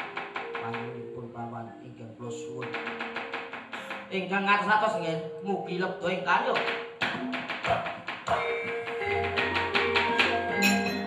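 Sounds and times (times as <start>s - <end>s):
sharp wooden knocks: 0.0s - 0.9s, 2.6s - 4.1s, 6.5s - 10.4s
gamelan ringing metal tones: 8.3s - 11.0s.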